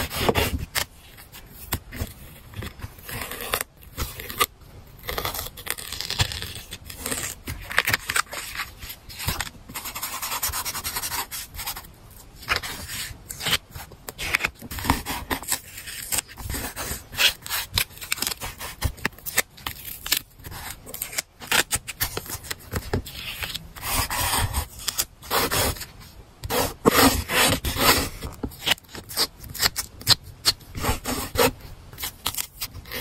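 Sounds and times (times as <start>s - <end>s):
paper and tape rustling: 5.2s - 33.0s.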